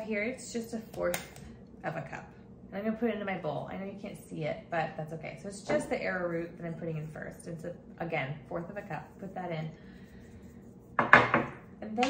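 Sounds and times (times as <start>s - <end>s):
ceramic dish knocking on table: 11.0s - 11.6s.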